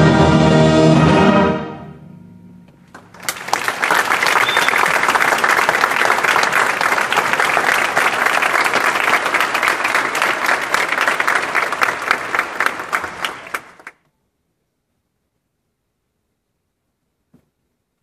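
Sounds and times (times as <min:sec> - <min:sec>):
concert band music: 0:00.0 - 0:03.2
audience applauding: 0:02.9 - 0:14.0.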